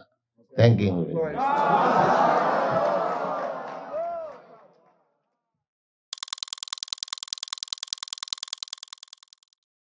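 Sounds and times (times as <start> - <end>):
glitch stutter of high ticks: 6.1 - 9.6.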